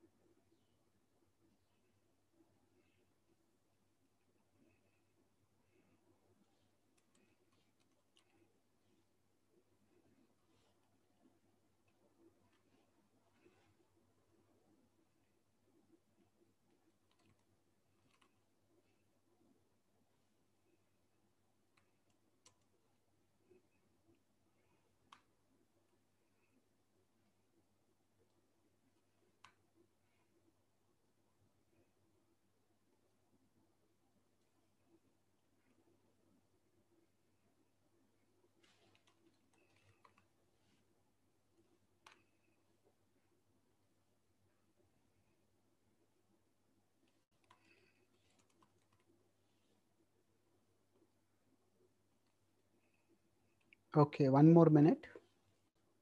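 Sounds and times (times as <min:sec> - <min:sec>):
soft clicks: 0:04.2 - 0:09.2, 0:16.5 - 0:19.1, 0:20.6 - 0:26.7, 0:27.9 - 0:30.6, 0:37.4 - 0:43.4, 0:46.9 - 0:53.9.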